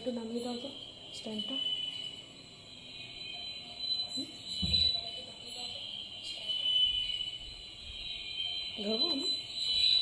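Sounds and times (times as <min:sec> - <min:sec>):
faint high-pitched whine: 0:00.0 - 0:10.0
low background noise: 0:00.0 - 0:10.0.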